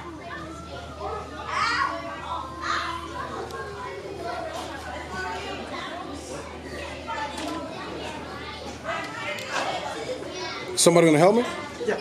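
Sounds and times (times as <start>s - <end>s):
children's voices: 0.0s - 12.0s.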